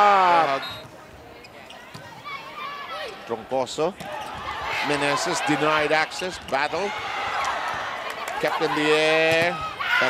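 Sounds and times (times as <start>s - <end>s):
murmur of crowd voices: 0.0s - 10.0s.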